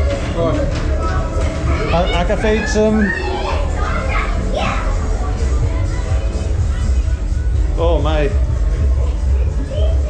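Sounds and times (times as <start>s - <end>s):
background music: 0.0s - 10.0s
lively voices: 0.0s - 10.0s.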